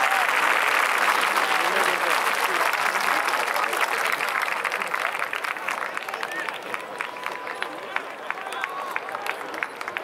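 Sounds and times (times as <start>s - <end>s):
crowd clapping: 0.0s - 10.0s
crowd voices: 0.0s - 10.0s.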